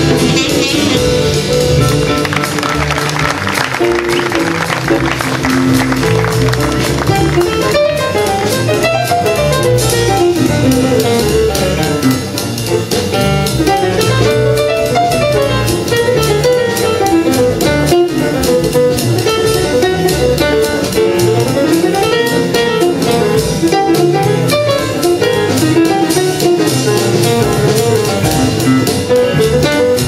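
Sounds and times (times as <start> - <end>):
jazz piano bass and drums: 0.0 - 30.0.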